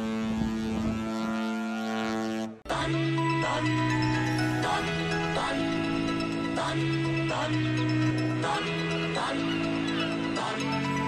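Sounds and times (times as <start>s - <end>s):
ship's horn blast: 0.0s - 2.7s.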